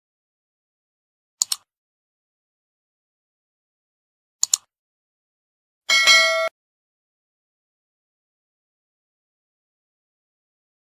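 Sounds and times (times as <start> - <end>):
notification bell chime: 5.9 - 6.5.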